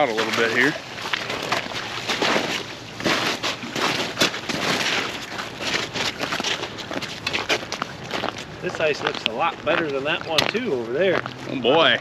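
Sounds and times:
footsteps crunching through slush: 0.0 - 12.0.

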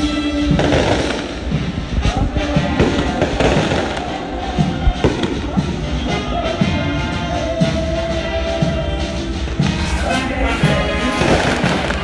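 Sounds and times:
fireworks bangs: 0.0 - 6.5, 9.4 - 12.0
brass band playing: 0.0 - 12.0.

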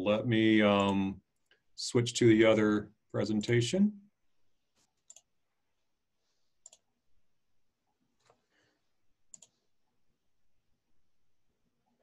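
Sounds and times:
computer mouse clicks: 4.9 - 5.3, 6.6 - 6.9, 9.3 - 9.6.

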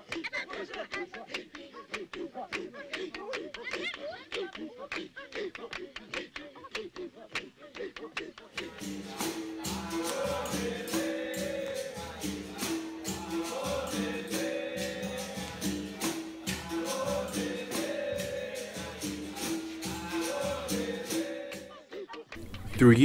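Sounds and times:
voices singing: 0.0 - 23.0
pandeiro jingle and clicks: 8.6 - 21.7.

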